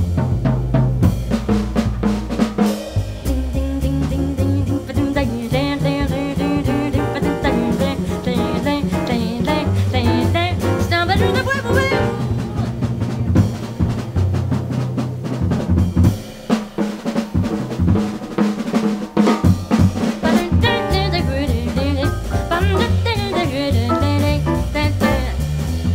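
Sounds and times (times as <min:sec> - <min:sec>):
upright bass: 0:00.0 - 0:15.9, 0:19.7 - 0:25.9
drum kit solo: 0:00.0 - 0:25.9
wavering vocal line: 0:03.3 - 0:12.9.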